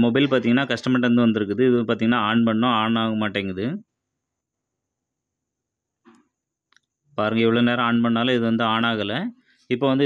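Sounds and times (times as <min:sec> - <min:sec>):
man speaking: 0:00.0 - 0:03.9, 0:07.2 - 0:10.0.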